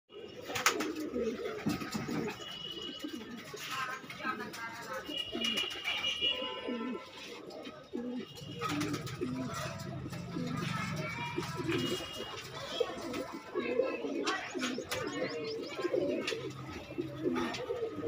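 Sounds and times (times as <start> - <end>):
pigeons cooing: 0.1 - 18.0.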